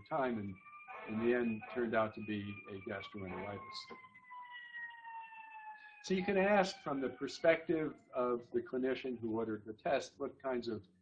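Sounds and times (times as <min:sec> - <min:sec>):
faint siren gliding down: 0:00.0 - 0:10.7.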